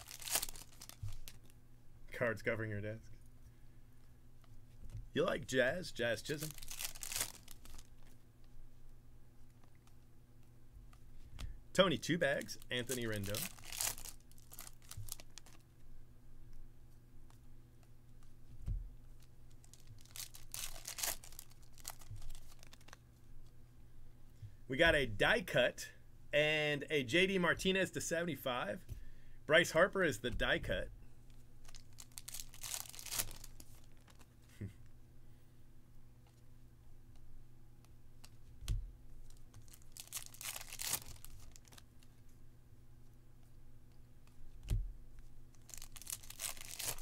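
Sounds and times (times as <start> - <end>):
foil wrapper rustling: 0.0 - 1.5, 6.4 - 8.1, 12.4 - 15.6, 19.5 - 23.0, 31.6 - 34.3, 39.2 - 41.9, 45.5 - 47.0
crisp scraping rustles: 19.6 - 23.0, 45.7 - 47.0.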